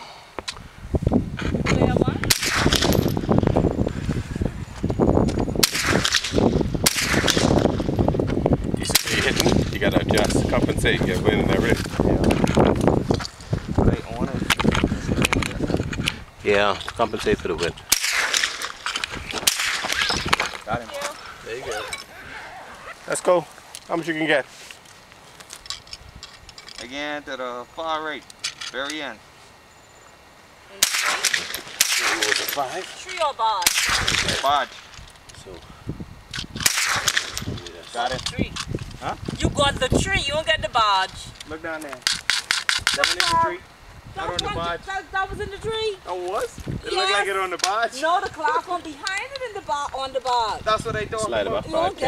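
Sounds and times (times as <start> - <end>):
wind rumble on microphone: 0.6 - 21.1, 33.6 - 41.7, 42.7 - 47.1, 49.1 - 52.0
gunshots: 2.2 - 3.1, 5.6 - 7.6, 8.9 - 9.7, 17.9 - 18.7, 19.4 - 20.2, 30.8 - 32.7, 33.6 - 34.7, 36.6 - 37.4
man talking: 8.8 - 12.4, 16.4 - 17.8, 20.6 - 24.5, 31.4 - 33.0, 46.1 - 48.0, 50.6 - 52.0.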